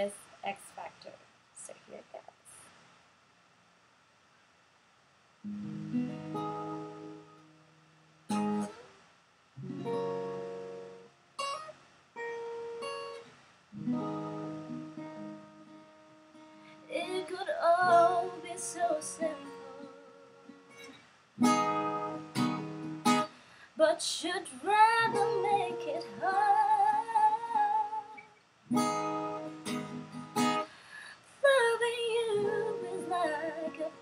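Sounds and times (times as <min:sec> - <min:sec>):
acoustic guitar chords: 0:05.4 - 0:34.0.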